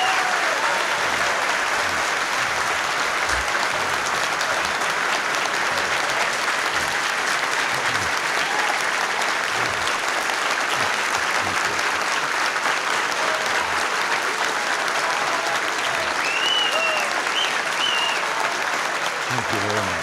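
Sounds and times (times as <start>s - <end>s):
audience applause: 0.0s - 20.0s
high calls from audience: 0.0s - 20.0s.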